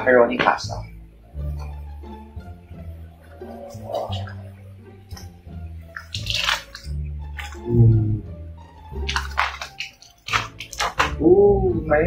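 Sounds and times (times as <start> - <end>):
background music with bass line: 0.6 - 12.0.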